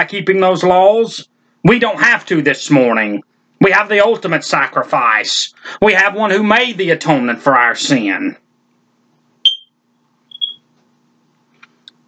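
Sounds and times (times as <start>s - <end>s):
faint steady hum: 0.0s - 12.0s
high-pitched electronic beeps: 9.4s - 10.6s.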